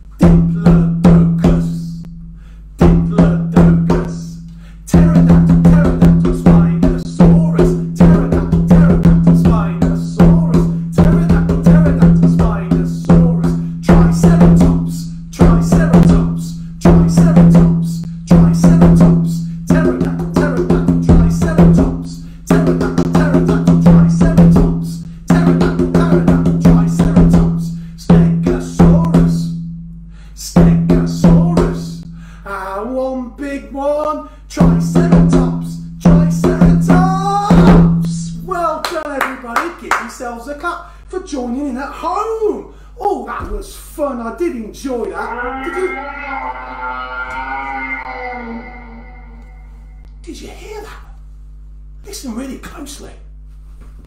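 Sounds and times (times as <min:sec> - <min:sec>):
conga drum played by hand: 0:05.0 - 0:16.3, 0:18.4 - 0:27.5.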